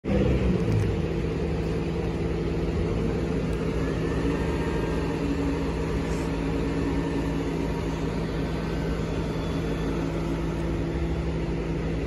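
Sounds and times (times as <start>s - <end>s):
truck diesel engine idling: 0.1s - 12.0s.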